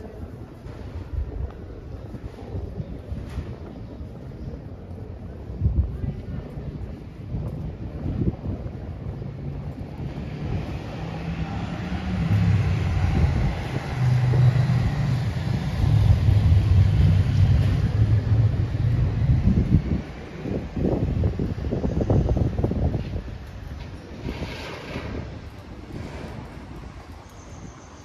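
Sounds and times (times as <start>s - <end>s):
wind noise on microphone: 0.0s - 28.0s.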